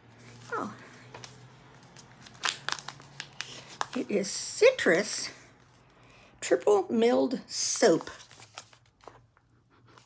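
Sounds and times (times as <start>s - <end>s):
wrapping crinkling and tearing: 0.2s - 4.4s, 7.9s - 9.3s.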